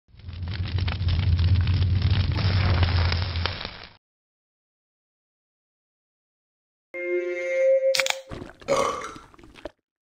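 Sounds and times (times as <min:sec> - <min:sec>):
person burping: 0:08.3 - 0:09.7.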